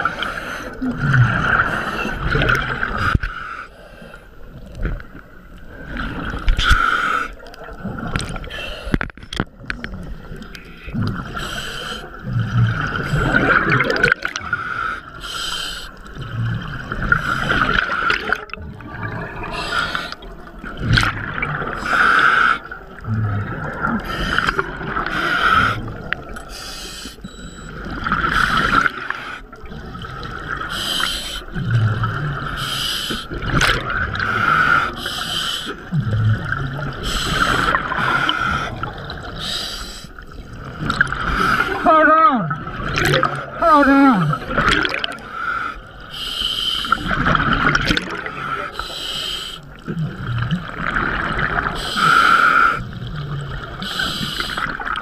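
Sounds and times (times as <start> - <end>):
bubbling exhale underwater: 9.9 - 14.6, 35.7 - 39.6, 42.5 - 43.6
regulator hissing inhale: 11.4 - 12.2, 14.5 - 16.1, 26.5 - 27.2, 30.7 - 31.6, 32.6 - 33.4, 34.3 - 35.9, 37.0 - 38.8, 39.4 - 40.2, 45.2 - 47.0, 48.4 - 49.8, 51.8 - 52.8, 53.8 - 54.8.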